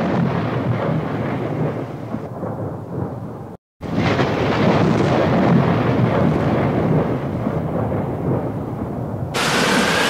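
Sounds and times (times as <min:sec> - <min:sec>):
thunder rumbling: 0:00.0 - 0:10.0
rain: 0:09.3 - 0:10.0.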